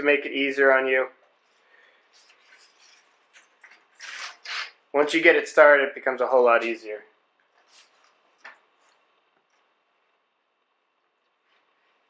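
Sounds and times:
dry rubbing scrapes: 1.4s - 4.8s, 7.6s - 8.2s.

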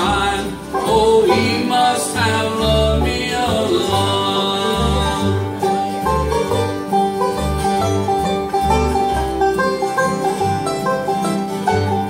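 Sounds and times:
mandolin: 0.0s - 12.0s
strummed acoustic guitars: 0.0s - 12.0s
upright bass line: 0.0s - 12.0s.

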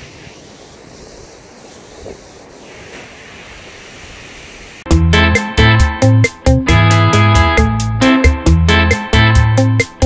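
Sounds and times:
loud music with plucked guitar: 4.9s - 10.0s.

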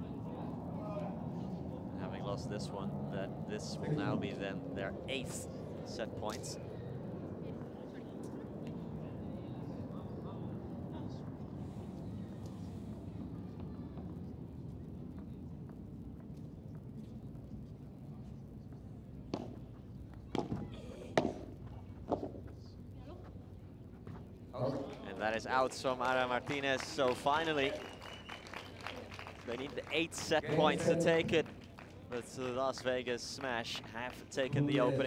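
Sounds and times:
rackets striking ball: 19.3s - 22.5s.

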